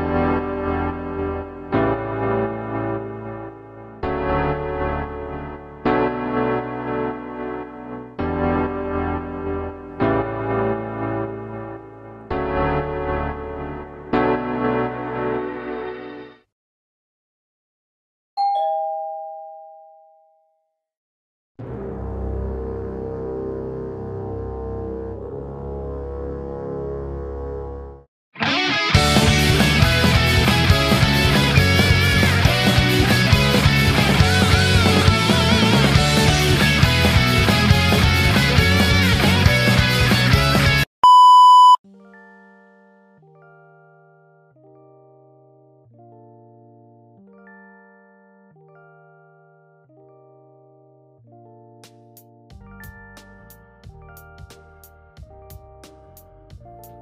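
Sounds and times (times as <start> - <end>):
electric piano chords: 0.0 - 15.6
two-tone doorbell chime: 18.4 - 20.7
high test-tone beep: 41.0 - 41.8.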